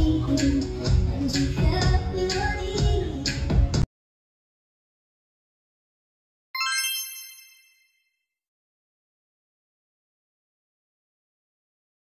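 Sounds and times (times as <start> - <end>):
bright electronic ding: 6.6 - 8.0.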